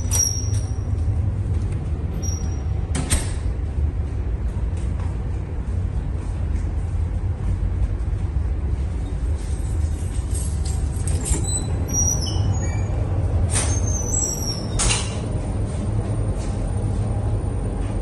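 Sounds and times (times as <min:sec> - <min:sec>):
short squeaks: 0:00.0 - 0:00.9, 0:10.4 - 0:15.2
ship engine rumbling: 0:00.0 - 0:18.0.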